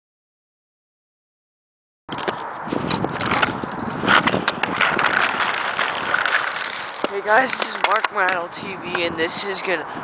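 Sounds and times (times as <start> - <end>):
wheel scrapes and clicks: 2.1 - 9.8
skate wheels rolling on asphalt: 2.1 - 10.0.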